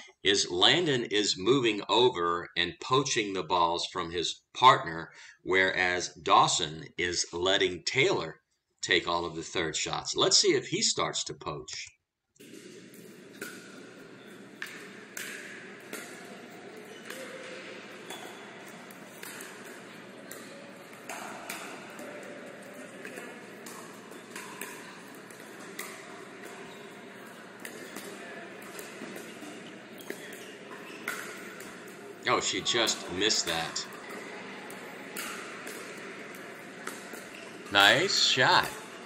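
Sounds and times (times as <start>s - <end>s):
large hall noise: 12.4s - 39.0s
paddle hitting plastic ball: 30.0s - 32.0s, 33.4s - 37.8s.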